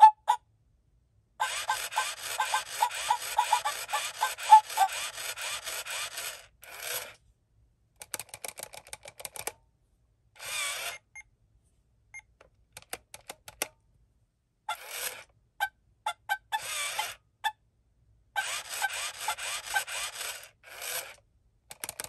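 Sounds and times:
tinny electronic toy tune: 1.4 - 5.7
rapid mechanical motor clicking: 1.4 - 7.2, 16.5 - 17.2, 18.4 - 22.0.

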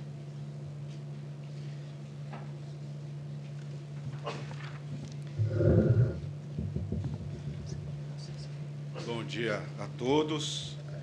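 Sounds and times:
sound system hum: 5.3 - 8.9
knocks on microphone: 6.5 - 7.7
microphone being handled: 6.6 - 7.8.

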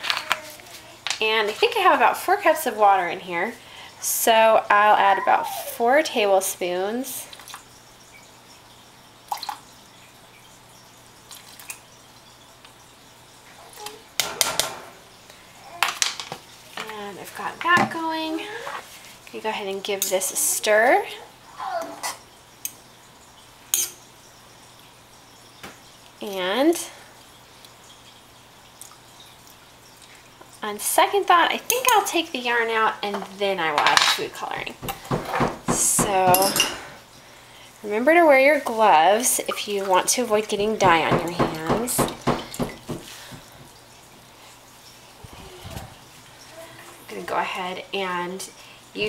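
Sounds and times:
quiet water sounds: 0.0 - 15.8, 16.4 - 49.0
spoon clinking against metal pot: 36.2 - 36.8
soft knocks: 40.8 - 43.5.

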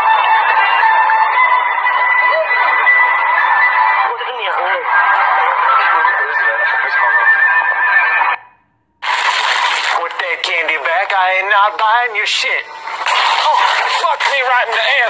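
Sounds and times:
voices: 1.9 - 8.6, 10.0 - 15.0.

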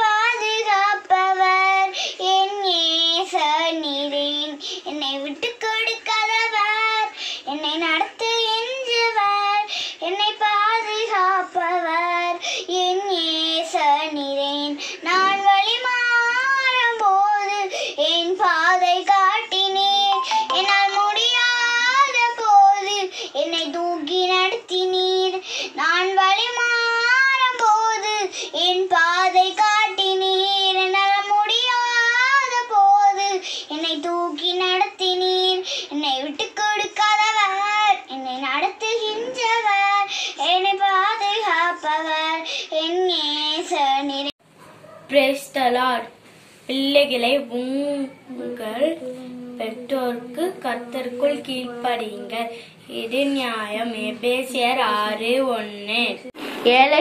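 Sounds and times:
young girl singing: 0.0 - 44.4, 45.1 - 56.4.

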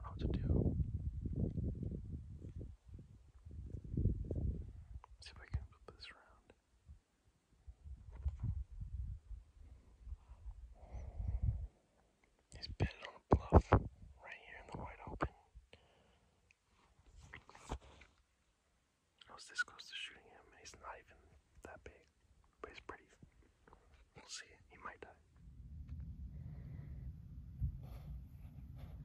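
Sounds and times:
man whispering: 0.0 - 0.7, 5.0 - 6.6, 12.5 - 15.8, 17.2 - 18.0, 19.2 - 25.3
low steady rumble: 25.3 - 29.0.

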